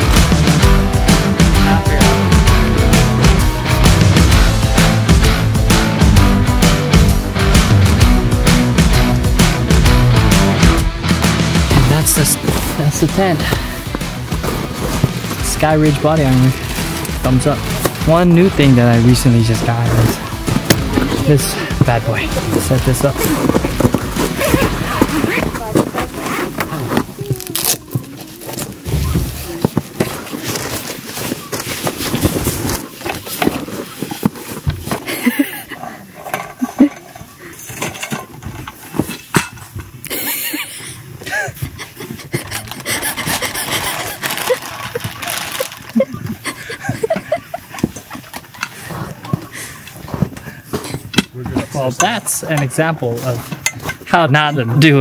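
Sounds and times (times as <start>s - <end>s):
people talking: 1.6s - 2.3s, 11.7s - 13.7s, 15.4s - 16.6s, 17.2s - 20.2s, 21.0s - 23.5s, 27.1s - 29.8s, 51.4s - 53.5s, 54.1s - 55.0s
fabric rustling: 18.8s - 35.5s.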